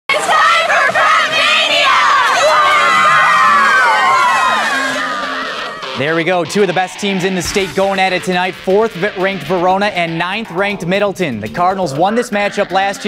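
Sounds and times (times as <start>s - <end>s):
crowd of young voices cheering: 0.1s - 6.2s.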